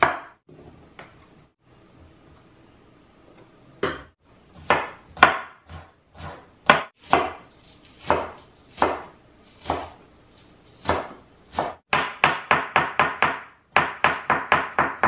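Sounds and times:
knife chopping on wooden board: 0.0s - 0.4s, 3.8s - 10.0s, 10.8s - 15.0s.

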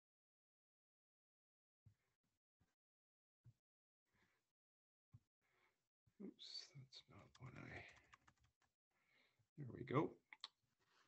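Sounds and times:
faint typing and clicking: 7.1s - 8.7s.

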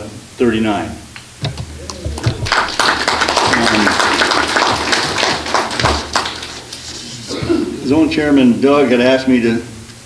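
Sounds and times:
person speaking: 1.4s - 2.8s
audience applauding: 1.4s - 7.0s.

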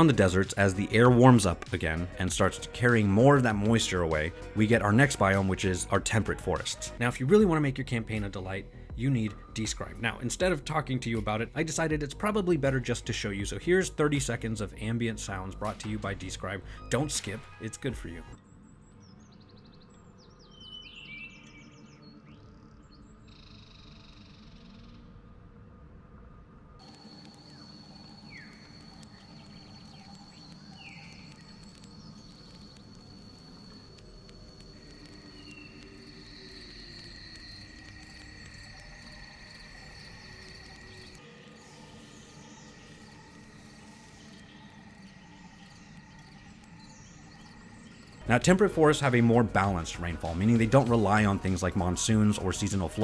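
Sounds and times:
birds chirping: 0.0s - 25.2s, 26.8s - 53.0s
low steady drone: 21.8s - 53.0s
high-pitched insect drone: 26.8s - 53.0s.

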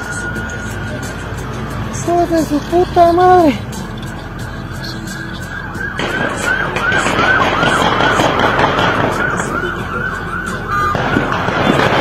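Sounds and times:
emergency vehicle siren yelping: 0.0s - 3.6s, 4.6s - 12.0s
low road noise: 0.0s - 12.0s.

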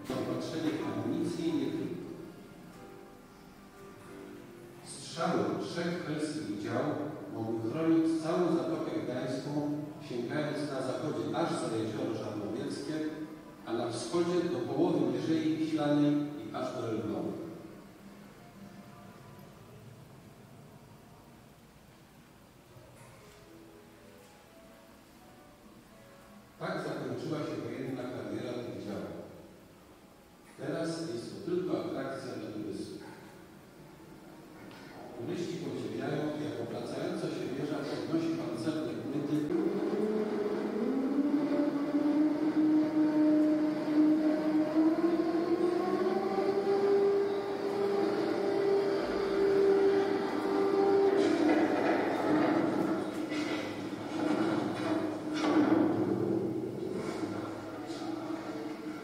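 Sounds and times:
man narrating: 0.0s - 2.2s, 4.8s - 17.6s, 26.6s - 29.4s, 30.5s - 33.1s, 35.0s - 39.7s
motor-like hum: 39.0s - 59.0s
clanks and knocks: 51.0s - 56.4s.

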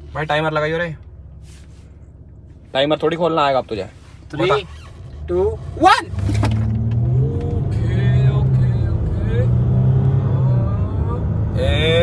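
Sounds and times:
car engine accelerating: 2.8s - 12.0s.

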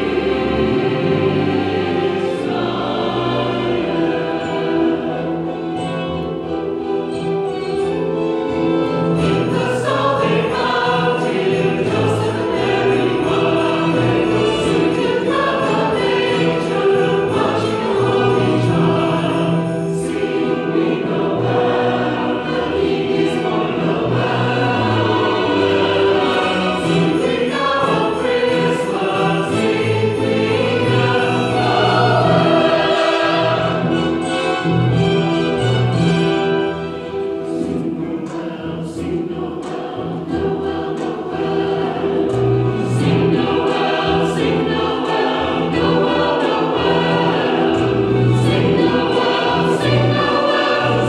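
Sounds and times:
mixed choir singing: 0.0s - 51.0s.

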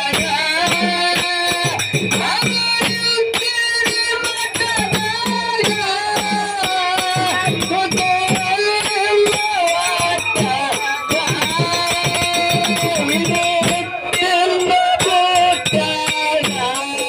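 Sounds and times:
hand percussion beat: 0.0s - 17.0s.

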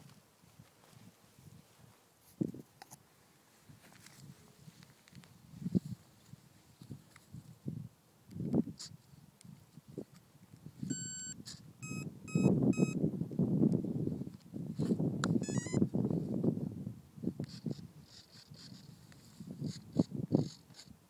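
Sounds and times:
rustling and handling noise: 0.0s - 7.6s
electronic beeps and chirps: 10.9s - 13.0s, 15.4s - 15.8s.

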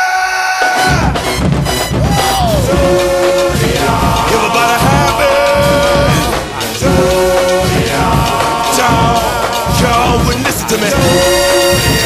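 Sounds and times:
loud marching drums: 0.8s - 12.0s
marching band held note: 0.8s - 12.0s.

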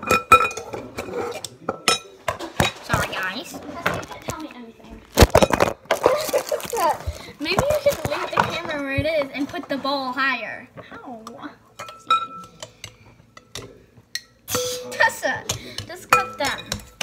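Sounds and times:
children's voices and laughter: 6.0s - 7.6s
masher clinking against glass bowl: 11.8s - 17.0s.

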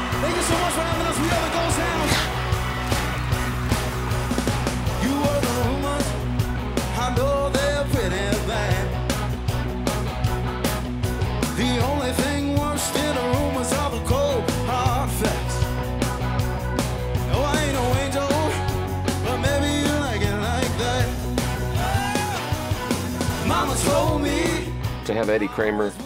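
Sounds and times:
blues-rock band playing: 0.0s - 25.4s
man singing lead vocal: 5.0s - 9.0s, 11.4s - 15.6s, 17.3s - 22.3s, 23.3s - 25.9s.

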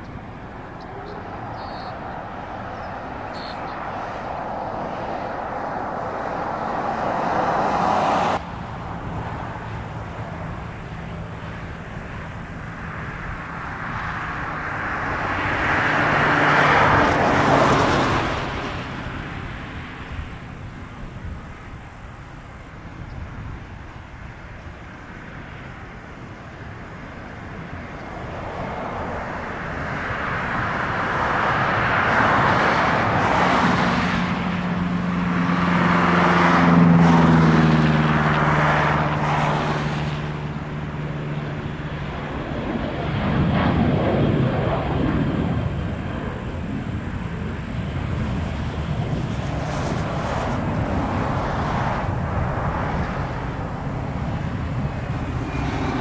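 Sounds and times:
engine noise: 0.0s - 56.0s.

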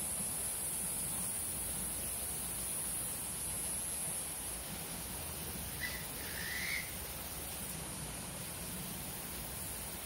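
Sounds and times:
steady background hiss: 0.0s - 10.0s
bird whistling call: 5.8s - 7.0s.

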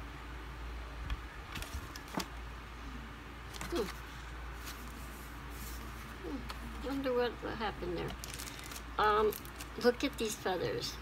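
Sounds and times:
steady low hum: 0.0s - 11.0s
paper booklet rustling: 1.5s - 2.4s, 3.5s - 7.2s, 7.8s - 10.4s.

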